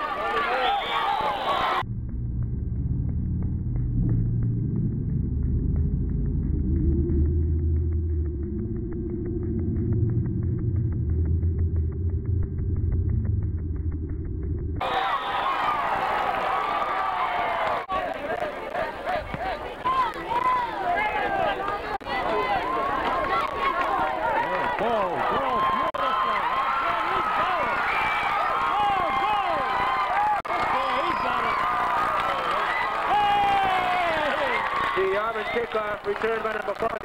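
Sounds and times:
football crowd shouting and cheering: 0.0s - 1.8s, 14.8s - 37.0s
brief low rumble: 1.8s - 14.8s.

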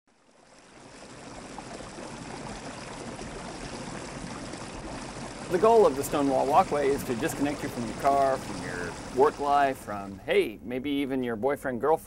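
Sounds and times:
water running: 0.1s - 11.1s.

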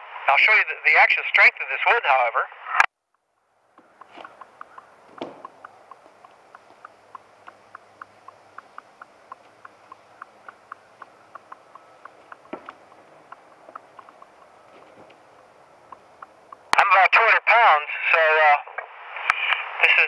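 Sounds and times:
shoes knocking on wooden board: 3.8s - 6.9s, 11.4s - 15.2s.

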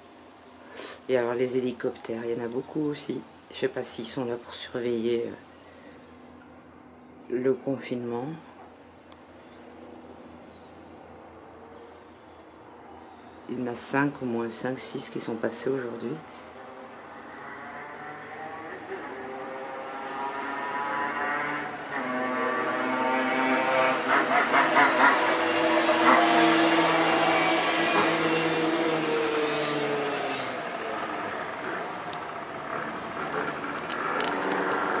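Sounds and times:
helicopter flying over: 23.2s - 35.0s.

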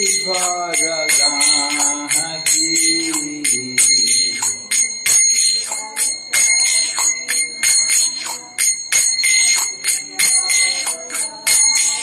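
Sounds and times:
small hand cymbals clashing: 0.0s - 12.0s.

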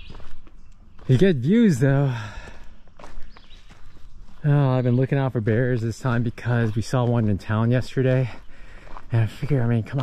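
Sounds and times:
footsteps on dirt trail: 0.0s - 10.0s
man speaking: 1.1s - 2.4s, 4.4s - 8.4s, 9.1s - 10.0s.

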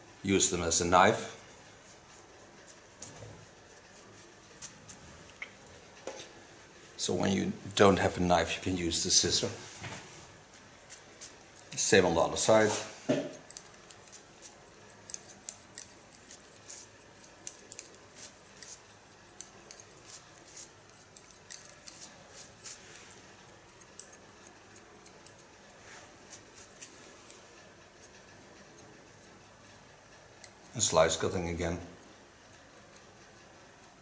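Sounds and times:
scissors snipping hair: 13.3s - 27.4s, 28.0s - 34.0s.

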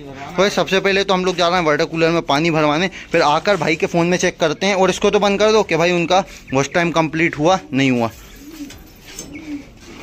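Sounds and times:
pigeons cooing: 4.1s - 10.0s.

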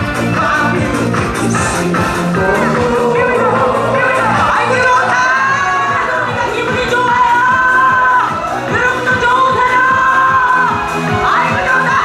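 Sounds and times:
backing track with dance beat: 0.0s - 12.0s.

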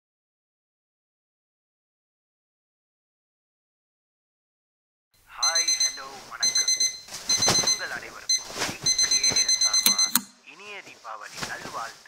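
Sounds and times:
alarm clock beeping: 5.4s - 10.4s.

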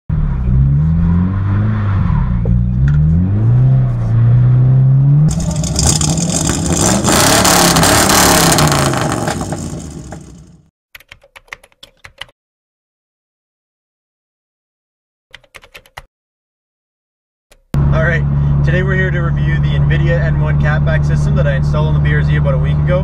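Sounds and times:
car engine revving: 0.1s - 10.6s
loud rushing noise: 5.3s - 10.6s.

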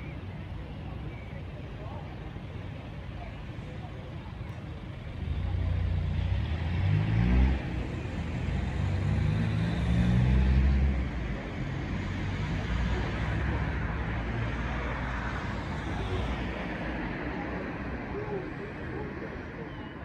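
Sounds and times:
vehicle engine pulling away: 4.7s - 16.6s.

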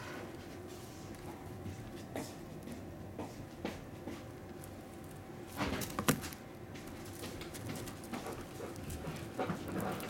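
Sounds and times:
foil toy rustling and clicking: 4.4s - 10.0s.

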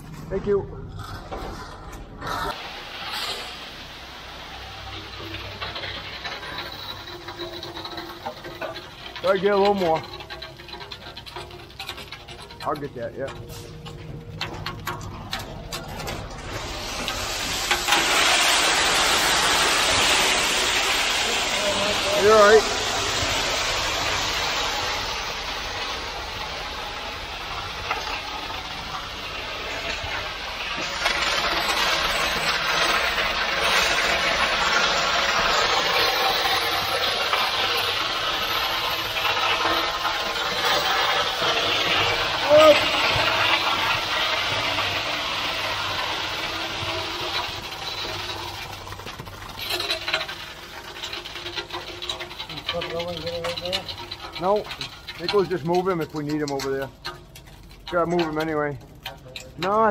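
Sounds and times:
rake spreading concrete: 0.0s - 59.9s
wet concrete pouring: 0.0s - 59.9s.

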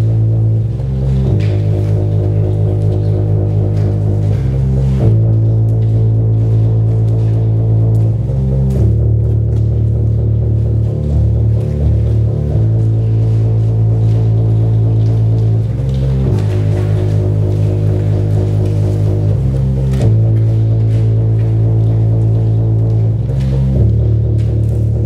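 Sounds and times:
low drone music: 0.0s - 25.0s.

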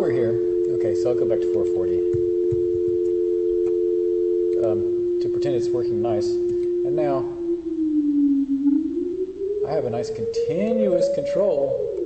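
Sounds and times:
steady electronic sine tones: 0.0s - 12.0s.

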